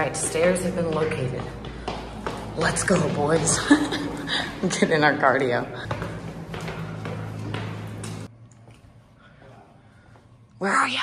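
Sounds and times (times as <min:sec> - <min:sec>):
footsteps climbing stairs: 0:00.0 - 0:08.8.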